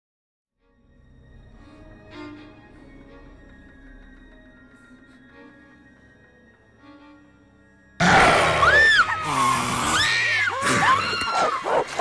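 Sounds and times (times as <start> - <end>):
faint soft music: 0.6 - 8.0
woman screaming: 8.5 - 11.7.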